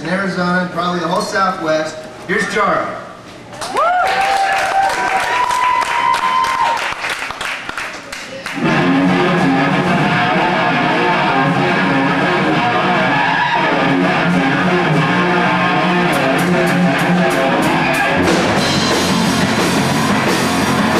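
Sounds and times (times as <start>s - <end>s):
electric guitar riff: 8.6s - 20.9s
drum hits: 15.9s - 20.9s.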